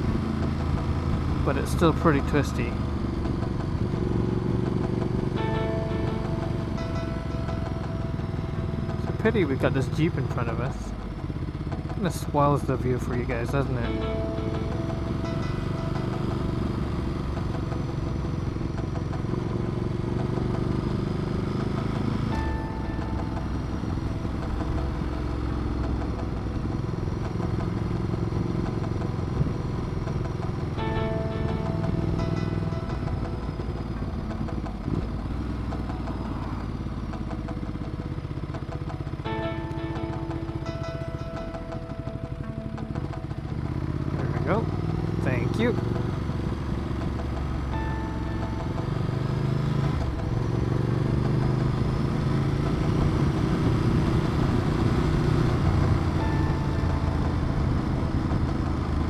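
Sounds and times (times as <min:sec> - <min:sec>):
background music: 0:00.0 - 0:59.0
motorcycle engine cruising: 0:00.0 - 0:59.0.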